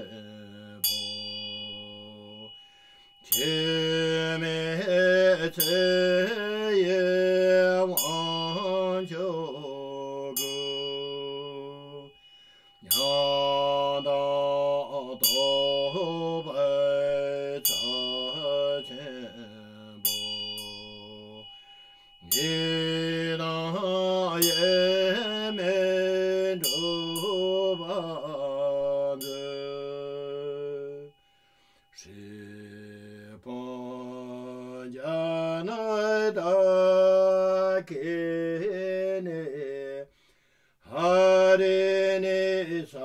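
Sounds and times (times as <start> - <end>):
small hand bell strikes: 0.0 - 4.7, 7.9 - 32.1
deep male voice chanting: 3.3 - 12.1, 22.3 - 31.1, 32.0 - 40.1, 40.9 - 43.0.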